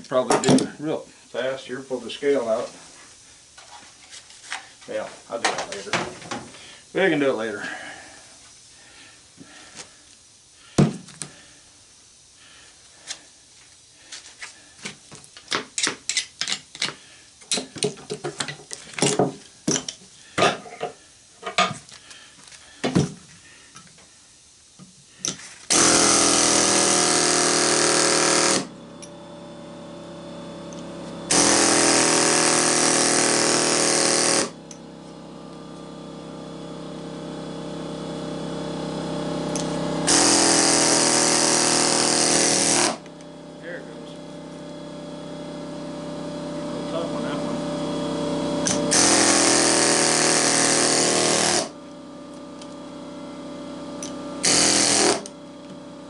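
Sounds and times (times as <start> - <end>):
pneumatic air chisel hammering: 10.7 - 11.4, 15.4 - 21.7, 25.2 - 29.2, 30.6 - 35.2, 39.4 - 43.2, 48.6 - 51.8, 54.0 - 55.9
steady hum: 17.0 - 56.0.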